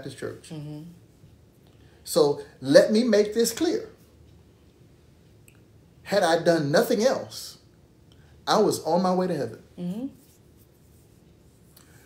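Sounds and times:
faint scratchy rustle: 0:09.8 - 0:12.0.

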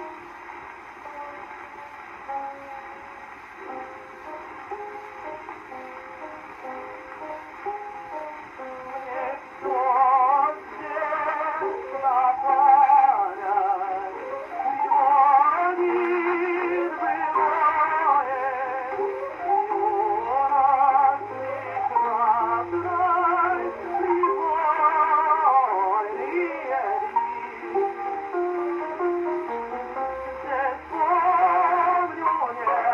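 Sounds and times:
gramophone opera tenor singing: 0:03.6 - 0:32.9.

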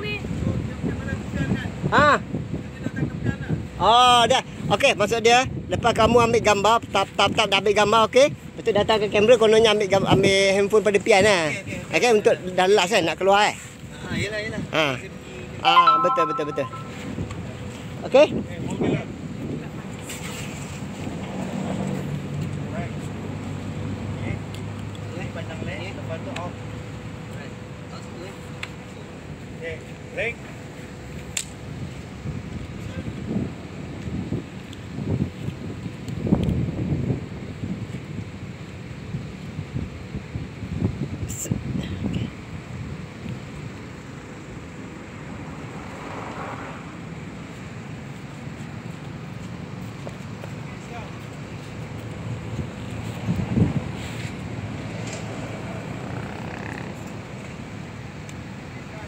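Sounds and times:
wind buffeting microphone: 0:52.5 - 0:54.0.

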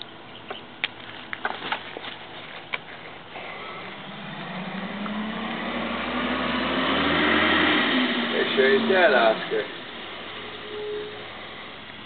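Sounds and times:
vehicle approaching: 0:02.1 - 0:12.0.

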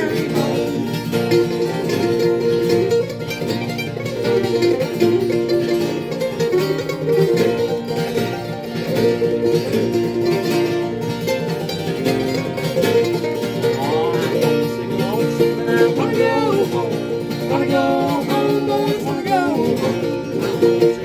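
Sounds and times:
acoustic guitar: 0:00.0 - 0:21.0
mandolin: 0:00.0 - 0:21.0.

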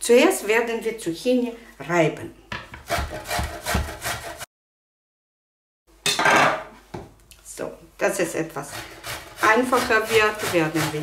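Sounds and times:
grating on metal grater: 0:02.9 - 0:04.4, 0:08.5 - 0:11.0.

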